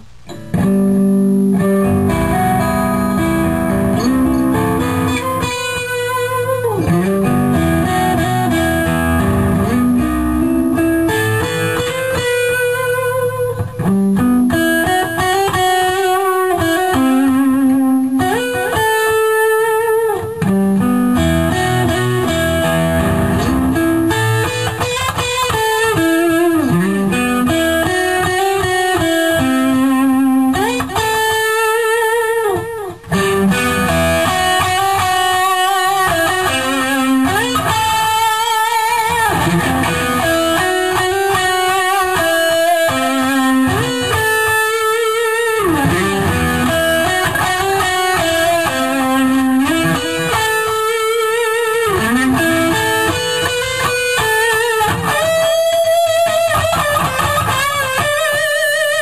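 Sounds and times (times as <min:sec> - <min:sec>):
electric guitar lick with vibrato: 0:00.0 - 0:59.0.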